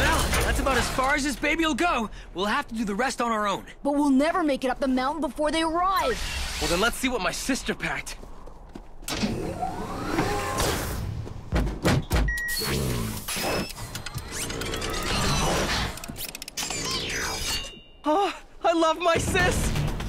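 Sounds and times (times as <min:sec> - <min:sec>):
whirring servo whines: 0:09.1 - 0:11.0
heavy thuds: 0:10.1 - 0:12.3
mechanical clanks and knocks: 0:11.5 - 0:12.5.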